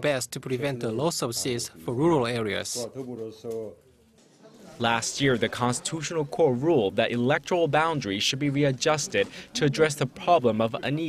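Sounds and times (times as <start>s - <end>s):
man speaking: 0.0s - 3.8s, 4.7s - 11.0s.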